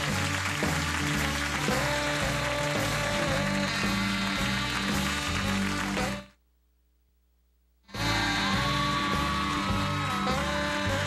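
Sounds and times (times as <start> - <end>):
band playing bumper music: 0.0 - 6.3, 8.0 - 11.0.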